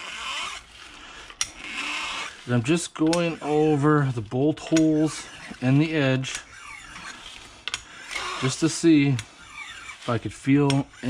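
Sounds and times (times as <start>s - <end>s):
file rasping on steel: 0.0s - 11.0s.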